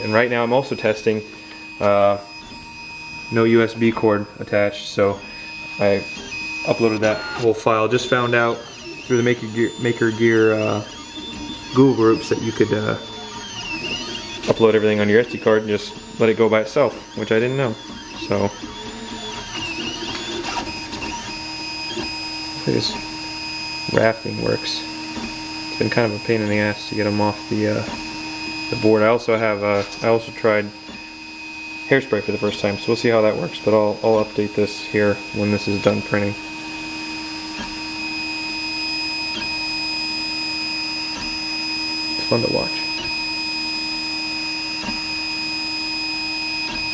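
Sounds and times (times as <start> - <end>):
stepper motors whining: 0.0 - 46.9.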